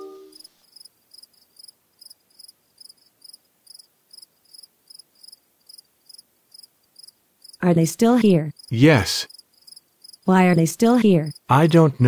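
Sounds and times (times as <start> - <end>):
held music chord: 0.0 - 0.4
crickets chirping: 0.2 - 7.6, 8.6 - 10.6, 11.2 - 11.8.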